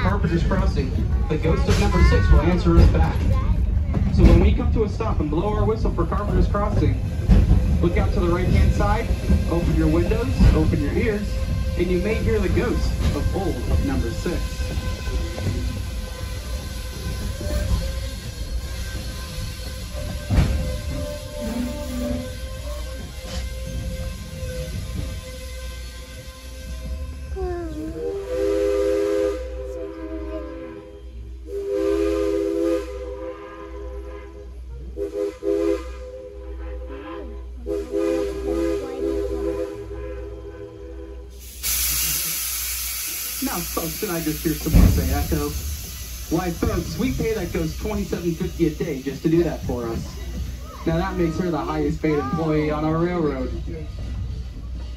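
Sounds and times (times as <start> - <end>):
low rumble of train: 0.0 - 54.9
loud hiss of steam: 5.9 - 27.3, 41.2 - 53.3
steam locomotive chime whistle: 28.0 - 36.8.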